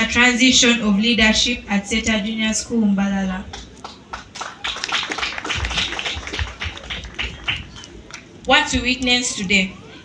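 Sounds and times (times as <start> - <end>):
single hand claps: 3.5 - 8.3
audience applause: 3.8 - 8.3.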